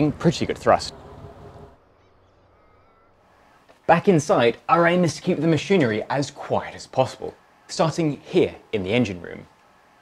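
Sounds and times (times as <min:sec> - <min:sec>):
man speaking: 0:00.0 - 0:01.2, 0:03.8 - 0:09.5
faint high tone: 0:00.9 - 0:03.2.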